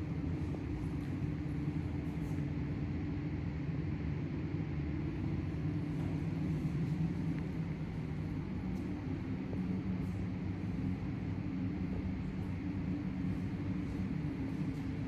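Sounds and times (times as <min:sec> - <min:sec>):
low hum and rumble: 0:00.0 - 0:15.0.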